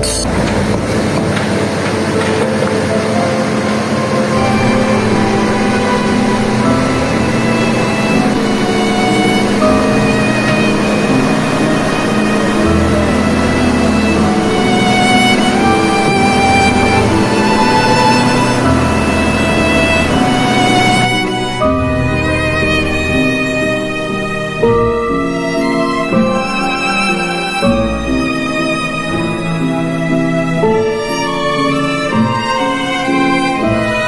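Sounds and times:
background music: 0.0s - 34.0s
excavator diesel engine running: 0.0s - 34.0s.

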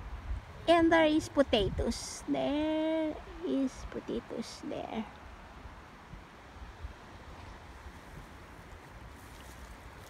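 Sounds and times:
wind noise on microphone: 0.0s - 4.0s, 5.4s - 10.0s.

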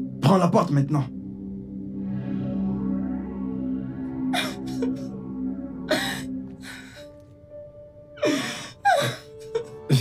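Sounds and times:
soft background music: 0.0s - 10.0s
woman sobbing: 4.4s - 5.1s, 5.9s - 7.2s, 8.2s - 10.0s.

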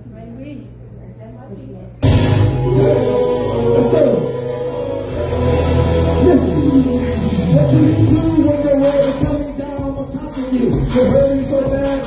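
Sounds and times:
live band playing: 2.0s - 12.0s
steady bass note: 2.0s - 12.0s.

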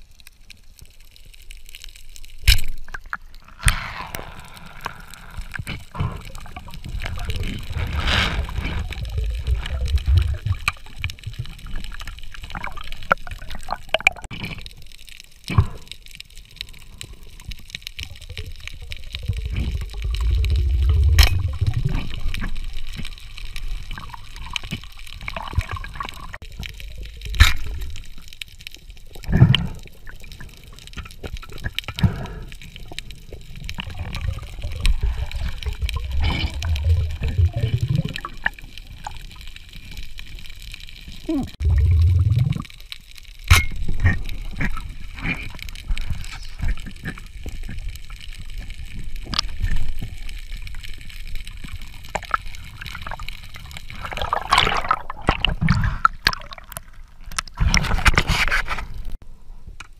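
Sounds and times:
underwater water rushing: 3.2s - 14.8s, 16.6s - 59.2s.

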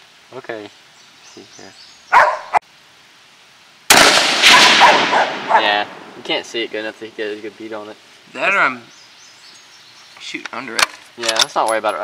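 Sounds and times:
rifle shot: 3.9s - 6.1s.

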